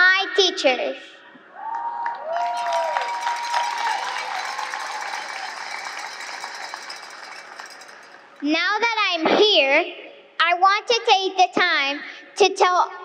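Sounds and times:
audience cheering: 1.5s - 8.2s
audience clapping: 1.7s - 8.4s.

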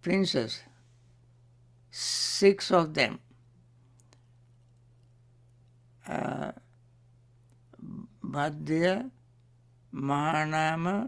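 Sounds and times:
person speaking: 0.0s - 0.8s, 1.9s - 3.4s, 6.0s - 6.8s, 7.7s - 9.2s, 9.9s - 11.0s
low electrical hum: 0.0s - 11.0s.

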